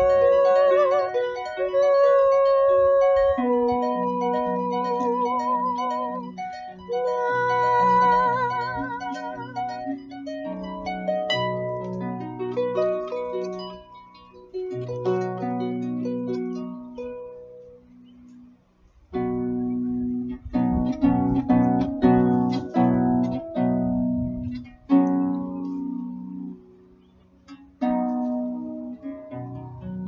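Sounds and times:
harp playing: 0.0 - 30.0.

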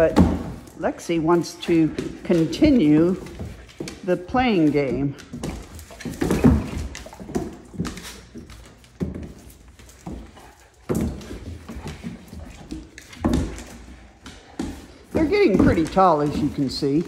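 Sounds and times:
puppy paws thudding on wooden floor: 0.0 - 17.0.

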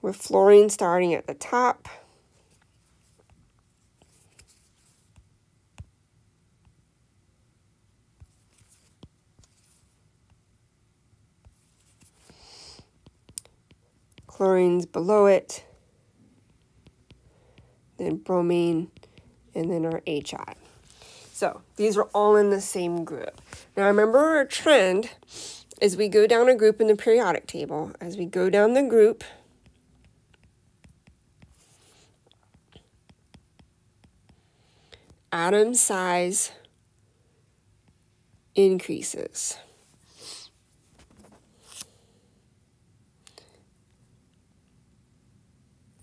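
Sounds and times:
stylus tapping tablet screen: 2.5 - 6.0, 8.2 - 10.4, 11.4 - 15.6, 16.3 - 24.4, 28.4 - 35.3.

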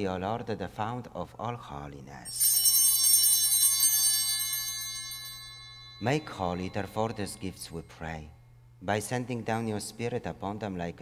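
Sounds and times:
altar bells ringing: 2.3 - 7.9.

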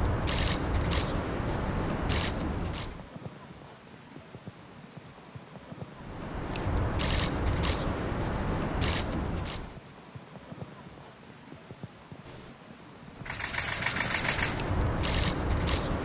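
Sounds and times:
camera shutters clattering: 13.3 - 16.0.

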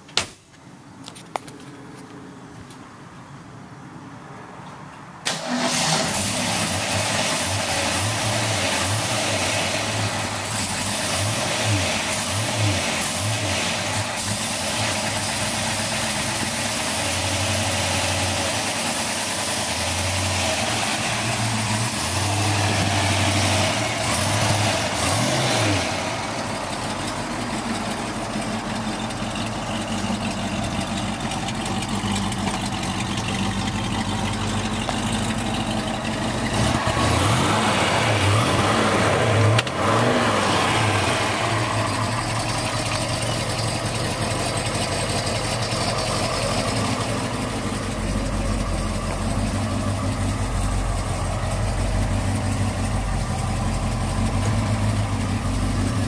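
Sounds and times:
car engine idling and revving: 0.0 - 56.0.

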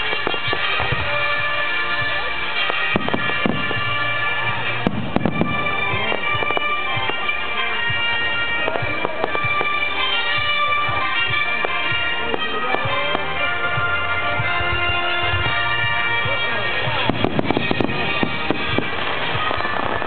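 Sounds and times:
fireworks bangs and crackling: 0.0 - 20.0
loud music with held tones: 0.0 - 20.0.

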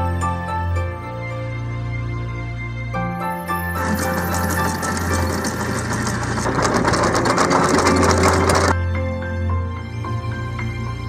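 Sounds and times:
anchor chain rattling: 3.8 - 8.8.

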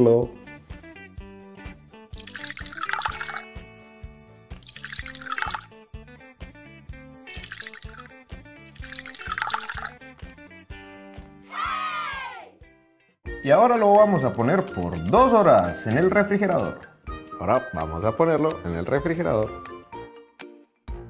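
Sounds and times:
background music with beat: 0.0 - 2.4, 5.7 - 8.8, 9.9 - 21.0
syrupy liquid pouring: 2.1 - 3.6, 4.5 - 5.8, 7.3 - 10.1.

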